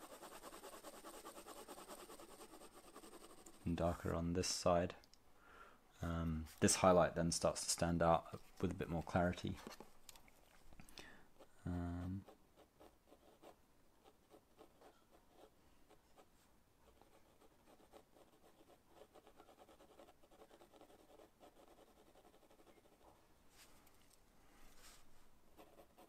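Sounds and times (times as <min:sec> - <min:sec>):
pencil shading on paper: 0:00.0 - 0:03.8, 0:11.4 - 0:23.1, 0:25.6 - 0:26.0.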